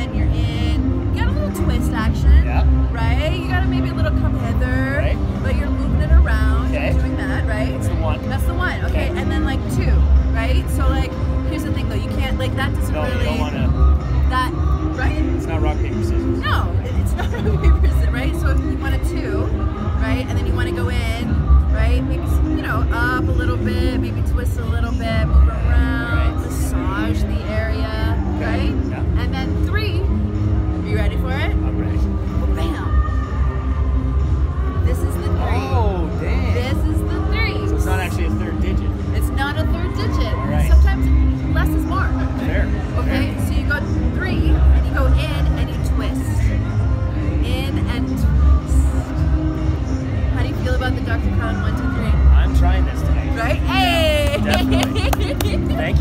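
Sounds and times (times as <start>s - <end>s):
woman talking: 0.0s - 13.5s, 14.3s - 15.3s, 16.4s - 30.1s, 32.6s - 33.0s, 34.8s - 35.7s, 36.5s - 38.0s, 39.2s - 42.2s, 43.0s - 46.5s, 47.4s - 48.9s, 50.4s - 52.1s, 53.4s - 56.0s
music with deep bass: 0.0s - 56.0s.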